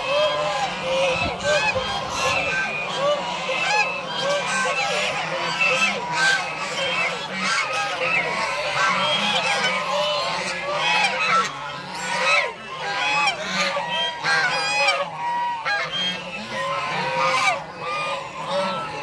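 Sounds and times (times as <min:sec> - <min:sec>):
geese honking: 0:00.0 - 0:19.0.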